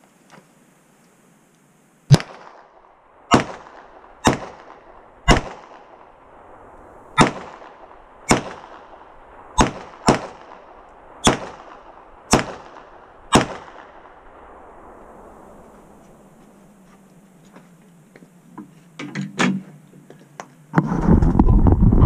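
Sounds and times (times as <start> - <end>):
handgun shots: 3.3 - 5.8, 7.2 - 7.6, 9.6 - 10.4, 11.2 - 11.7, 13.3 - 13.8.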